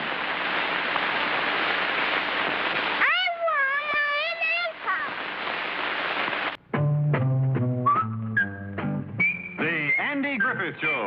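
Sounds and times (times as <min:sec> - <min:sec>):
soundtrack hiss: 0:00.0 - 0:06.6.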